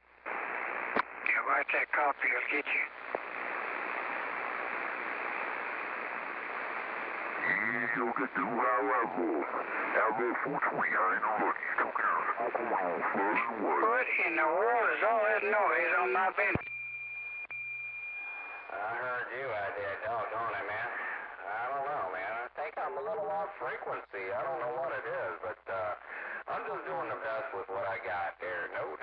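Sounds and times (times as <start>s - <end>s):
radio static hiss: 0.0s - 16.7s, 18.5s - 29.0s
radio signal blip: 16.4s - 18.8s.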